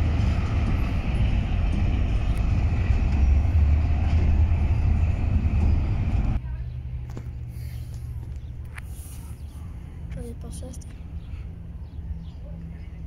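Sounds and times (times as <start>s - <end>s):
train wheels rolling: 0.0s - 6.4s
diesel locomotive engine rumble: 0.0s - 13.0s.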